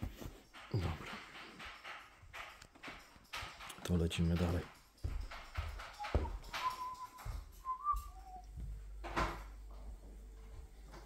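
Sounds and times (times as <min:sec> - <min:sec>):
footsteps on wooden floor: 0:00.0 - 0:11.0
person whistling: 0:06.2 - 0:08.5.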